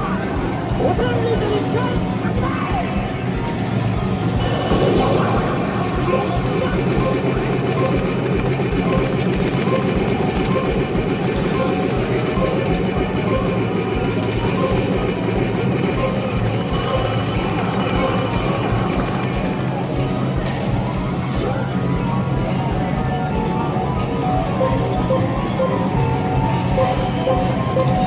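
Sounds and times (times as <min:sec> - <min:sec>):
arcade game music and voices: 0:00.0 - 0:28.0
arcade din: 0:00.1 - 0:22.4.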